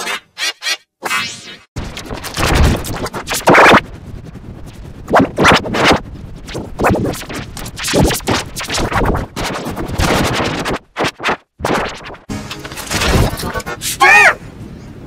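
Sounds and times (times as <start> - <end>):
distorted stuttering audio: 1.8 - 3.8, 5.1 - 13.7.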